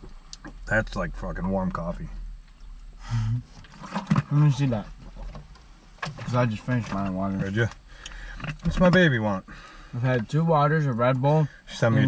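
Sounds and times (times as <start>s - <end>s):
low breathy vocal sound: 3.0s - 3.5s.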